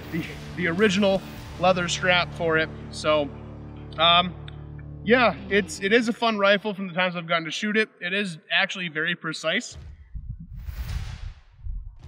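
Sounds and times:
wind buffeting microphone: 0:09.9 - 0:12.0.

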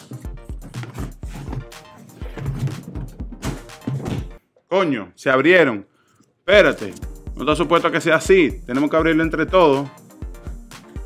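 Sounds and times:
background music with low beat: 0:00.0 - 0:04.4, 0:06.5 - 0:11.0.

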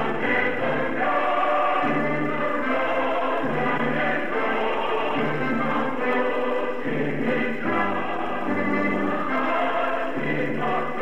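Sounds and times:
choir singing: 0:00.0 - 0:11.0
musical accompaniment: 0:00.0 - 0:11.0.

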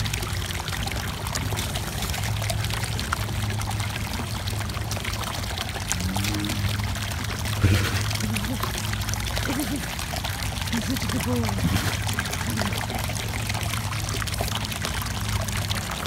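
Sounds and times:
low steady hum: 0:00.0 - 0:16.0
water running: 0:00.0 - 0:16.0.

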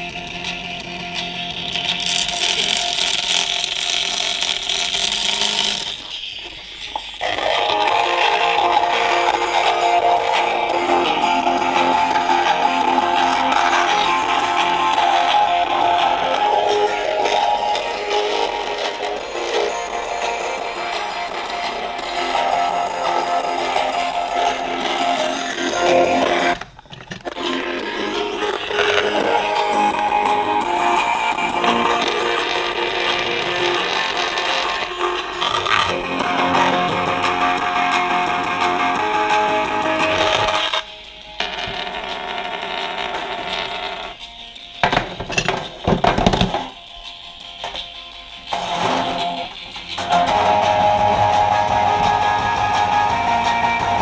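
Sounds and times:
thin guitar music from small speaker: 0:00.0 - 0:26.6, 0:27.2 - 0:42.1, 0:44.1 - 0:54.0.

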